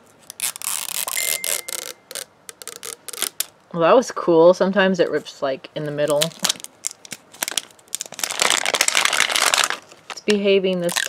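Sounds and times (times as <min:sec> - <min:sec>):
plastic wrap tearing: 0:00.1 - 0:03.6, 0:06.0 - 0:11.0.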